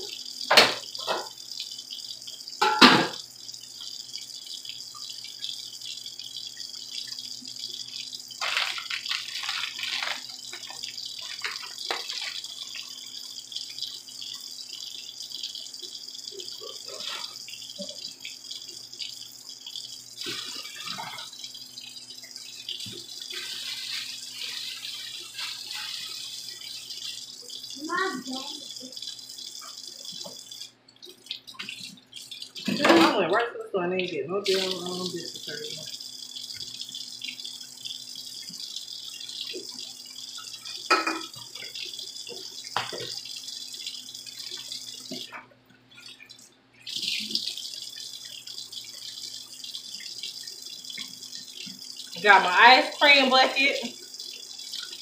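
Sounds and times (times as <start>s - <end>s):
range hood fan hiss and hum: 0.0s - 55.0s.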